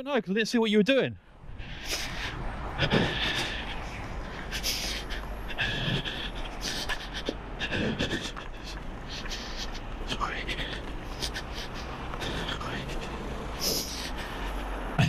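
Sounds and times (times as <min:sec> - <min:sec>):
person breathing hard: 0:01.4 - 0:15.0.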